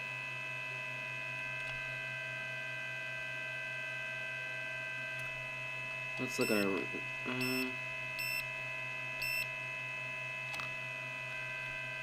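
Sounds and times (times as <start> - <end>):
electrical mains hum: 0.0 - 12.0
high-pitched electronic whining: 5.9 - 10.2.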